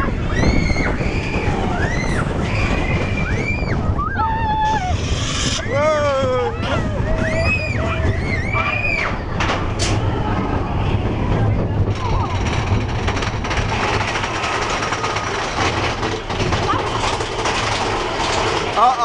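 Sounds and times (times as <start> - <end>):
roller coaster cars rumbling on track: 0.0 - 19.0.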